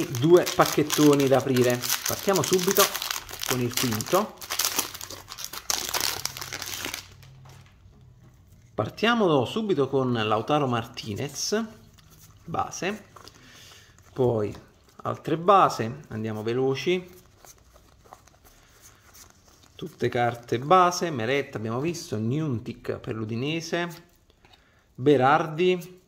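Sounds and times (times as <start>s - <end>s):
plastic wrapper crinkling: 0.0s - 7.8s
cards sliding with papery rustle: 17.0s - 20.2s.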